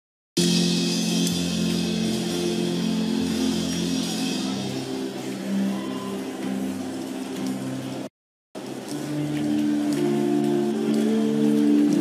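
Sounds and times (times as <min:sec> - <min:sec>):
keyboard pad chords drone: 0:00.4 - 0:12.0.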